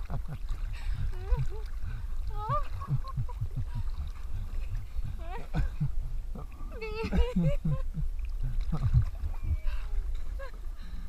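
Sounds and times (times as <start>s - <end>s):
waves rumbling: 0.0s - 11.0s
wind on microphone: 0.0s - 11.0s.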